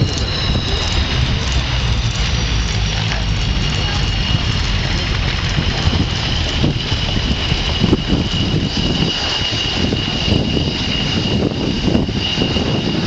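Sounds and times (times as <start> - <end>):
jet engines whining: 0.0 - 13.0
low engine rumble: 0.0 - 13.0.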